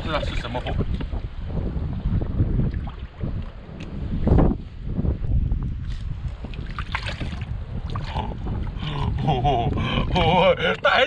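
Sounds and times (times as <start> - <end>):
wind buffeting microphone: 0.0 - 11.0
water sloshing and splashing: 2.0 - 4.0, 5.8 - 9.2.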